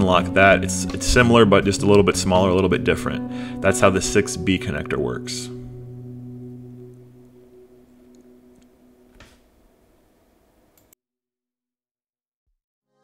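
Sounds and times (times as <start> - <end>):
acoustic guitar chord ringing: 0.0 - 9.2.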